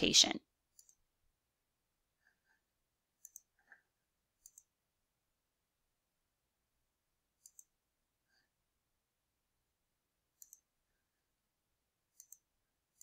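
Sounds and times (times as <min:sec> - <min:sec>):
faint computer mouse clicks: 0:03.2 - 0:03.8, 0:04.4 - 0:04.7, 0:07.4 - 0:07.8, 0:10.4 - 0:10.7, 0:12.1 - 0:12.5.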